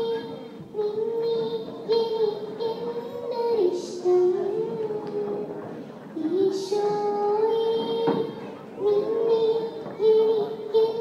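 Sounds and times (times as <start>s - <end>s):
girl singing into a microphone: 0.0s - 11.0s.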